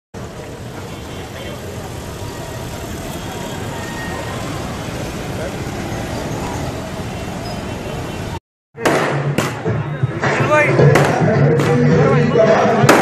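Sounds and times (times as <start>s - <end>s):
traffic noise: 0.1s - 13.0s
crowd murmur: 0.2s - 13.0s.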